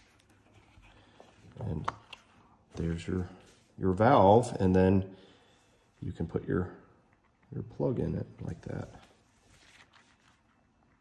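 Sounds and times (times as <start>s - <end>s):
latex sheet rustling: 8.4s - 11.0s.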